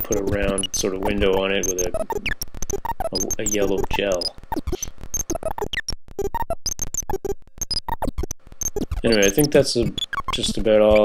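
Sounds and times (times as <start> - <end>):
electronic synthesizer blips: 0.0 - 11.0.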